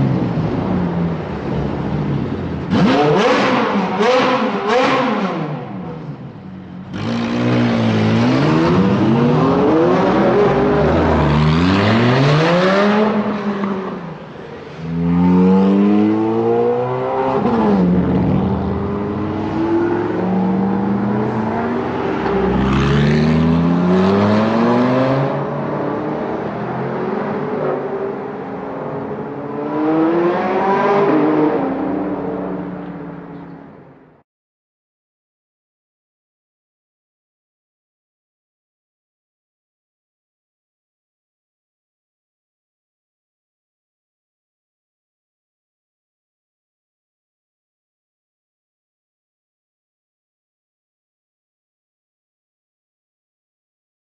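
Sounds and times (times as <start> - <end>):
car engine revving hard: 2.7 - 5.7, 15.1 - 25.5.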